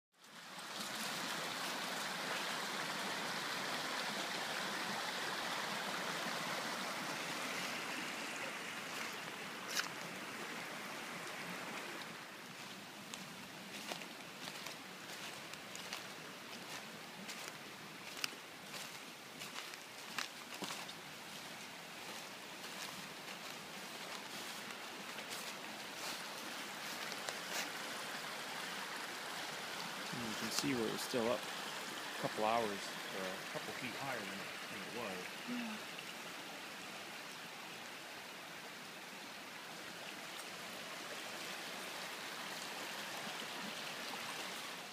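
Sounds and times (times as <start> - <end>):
stream rushing: 0.2 - 44.9.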